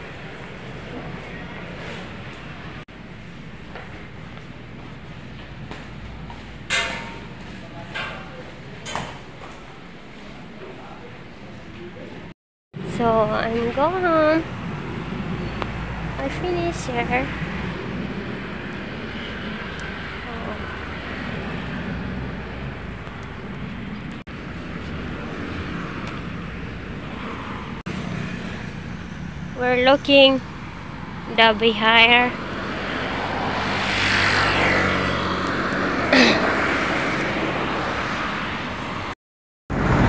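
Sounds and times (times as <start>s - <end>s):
outdoor rushing noise: 0.0s - 29.8s, 30.4s - 40.0s
highway traffic passing: 0.0s - 40.0s.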